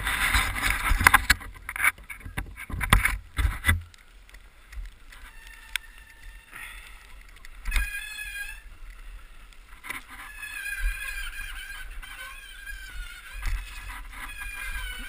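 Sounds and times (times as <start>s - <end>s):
bike rolling on snow: 0.0s - 3.9s, 4.5s - 15.0s
high squeals: 5.1s - 15.0s.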